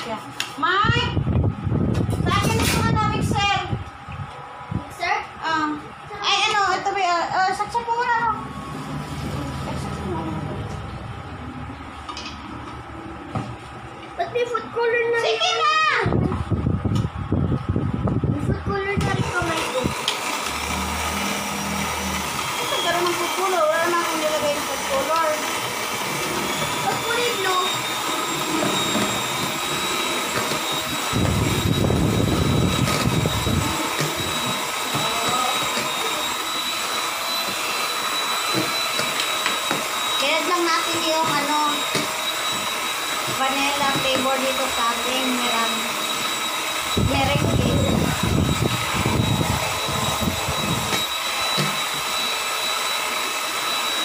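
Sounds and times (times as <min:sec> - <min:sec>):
electric hand mixer whining: 0:05.5 - 0:54.0.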